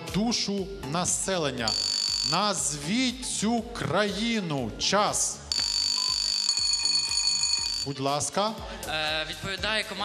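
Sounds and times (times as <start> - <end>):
electronic quiz buzzer tone: 1.6 - 2.7, 5.5 - 8.0.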